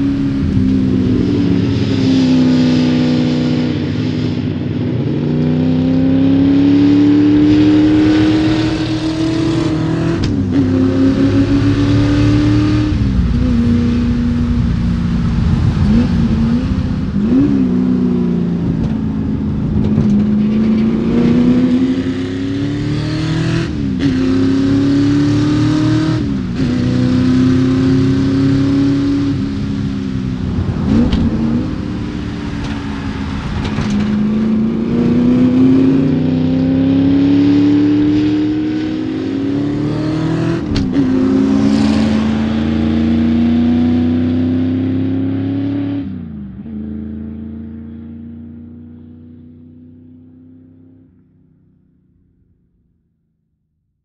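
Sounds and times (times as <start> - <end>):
car engine revving hard: 5.1 - 48.8.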